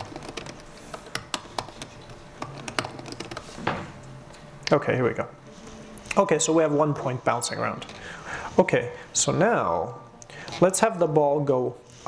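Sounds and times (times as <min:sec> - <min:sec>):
computer keyboard typing: 0:00.0 - 0:03.5.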